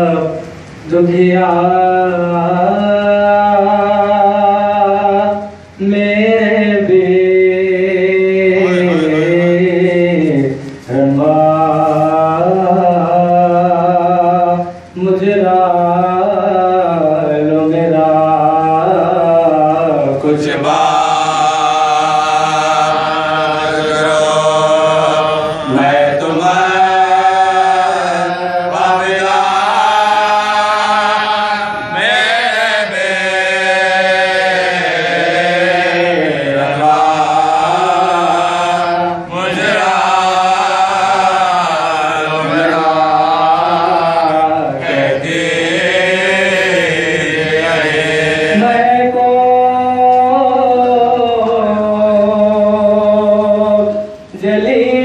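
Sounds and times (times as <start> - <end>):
men chanting a lament: 0.0 - 55.0.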